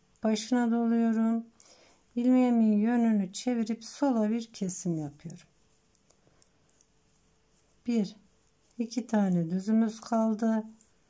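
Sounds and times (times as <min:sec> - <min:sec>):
person speaking: 0:02.2 - 0:05.6, 0:07.6 - 0:11.0
knitting needles clicking: 0:04.5 - 0:07.0, 0:07.8 - 0:11.0.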